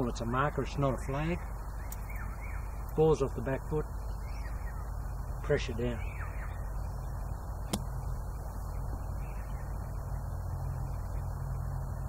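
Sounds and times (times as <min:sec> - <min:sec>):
low background rumble: 0:00.0 - 0:12.0
golf club striking sand: 0:07.7 - 0:08.0.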